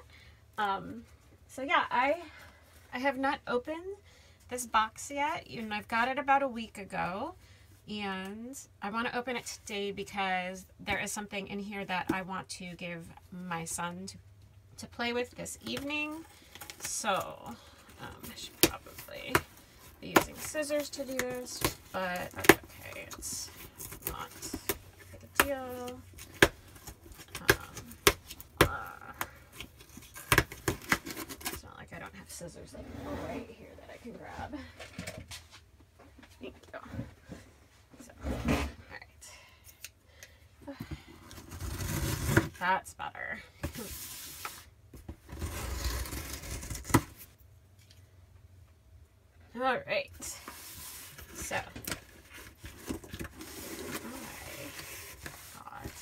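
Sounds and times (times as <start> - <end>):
cardboard and tape snapping: 29.9 - 31.6
cardboard ripping: 41.4 - 42.6, 45.3 - 47.3
cardboard rubbing and scraping: 41.4 - 42.6, 43.7 - 47.3, 50.4 - 56.0.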